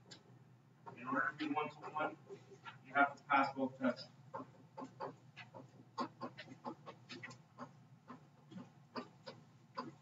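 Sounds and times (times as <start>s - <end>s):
stylus tapping and scraping: 3.4s - 10.0s.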